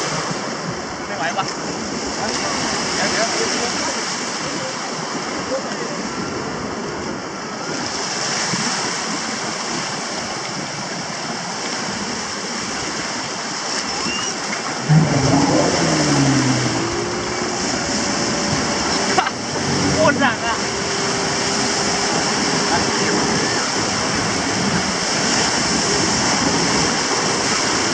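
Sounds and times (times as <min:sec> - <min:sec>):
waves washing on beach: 0:00.0 - 0:27.9
voices: 0:14.0 - 0:27.8.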